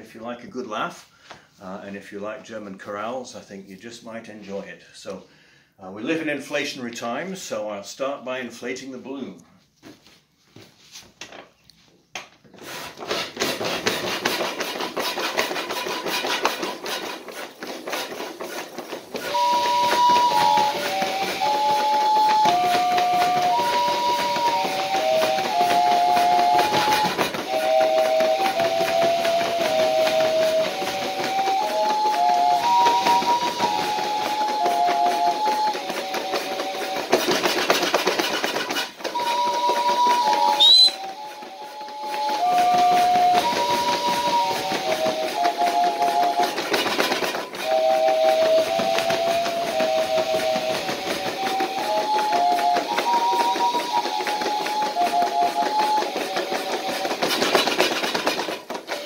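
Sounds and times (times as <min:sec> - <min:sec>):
bellows pumping air with hiss: 0:12.5 - 0:59.0
paper pipe organ chorale: 0:13.4 - 0:59.0.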